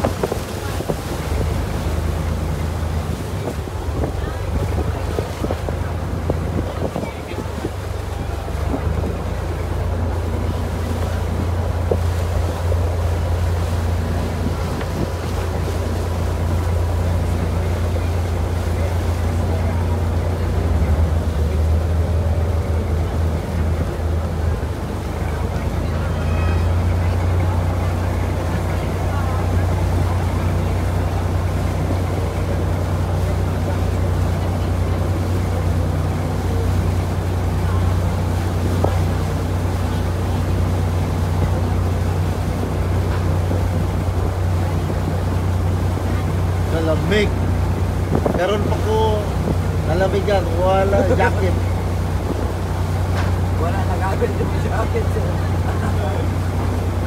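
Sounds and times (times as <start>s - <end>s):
boat engine droning: 0.0s - 57.0s
water washing along hull: 0.0s - 57.0s.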